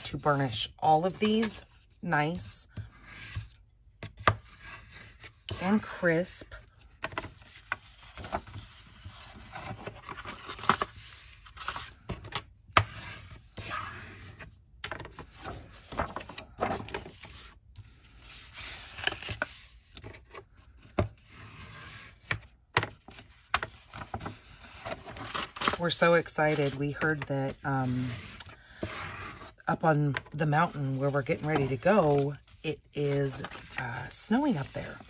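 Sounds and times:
bone folder scraping paper: 0:02.8 - 0:12.0, 0:12.8 - 0:22.4, 0:23.1 - 0:32.6, 0:33.3 - 0:35.0
paper rustling: 0:14.9 - 0:21.1, 0:23.1 - 0:35.0.

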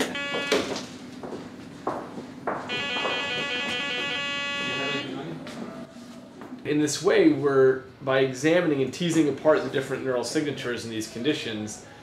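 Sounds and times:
electronic warning buzzer: 0:00.0 - 0:01.0, 0:02.7 - 0:05.3.

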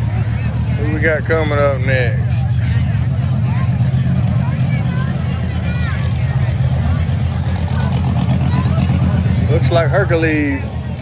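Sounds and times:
low engine rumble: 0:00.0 - 0:11.0
people talking: 0:00.0 - 0:11.0.

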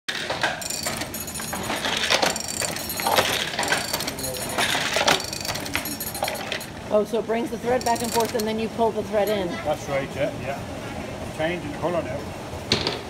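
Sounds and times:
wooden loom clacks: 0:00.1 - 0:06.8, 0:07.7 - 0:09.4
metallic jingle: 0:00.5 - 0:06.8, 0:07.5 - 0:09.6.

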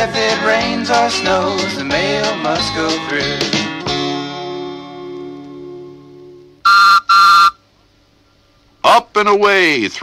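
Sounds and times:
whistle two-note blasts: 0:06.7 - 0:07.6.

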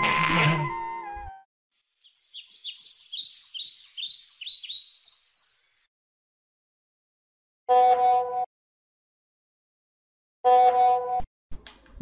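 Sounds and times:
bird chirping: 0:01.8 - 0:05.9.

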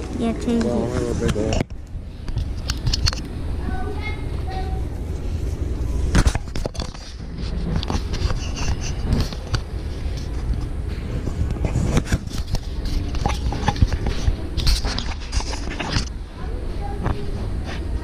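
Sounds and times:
low steady rumble: 0:00.0 - 0:18.0.

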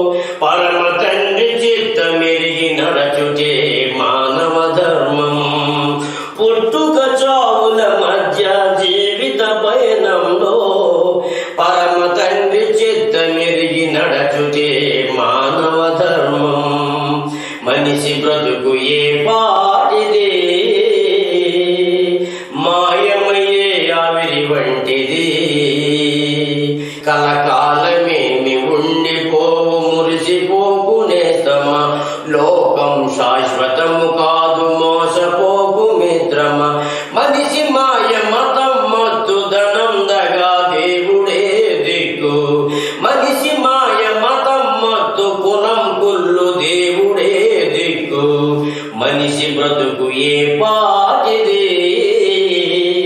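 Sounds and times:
man singing devotional song: 0:00.0 - 0:53.0
singer breathing: 0:00.1 - 0:00.4, 0:05.9 - 0:06.4, 0:11.1 - 0:11.6, 0:17.2 - 0:17.7, 0:22.2 - 0:22.6, 0:26.6 - 0:27.1, 0:31.9 - 0:32.3, 0:36.7 - 0:37.2, 0:42.6 - 0:43.1, 0:48.6 - 0:49.0.

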